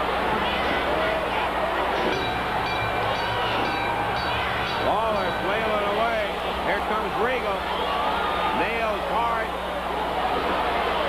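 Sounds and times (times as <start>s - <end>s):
crowd shouting and yelling: 0.0s - 11.0s.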